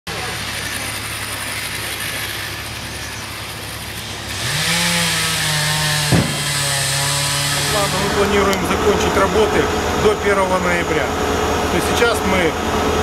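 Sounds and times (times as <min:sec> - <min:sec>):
excavator diesel engine revving: 0:00.1 - 0:13.0.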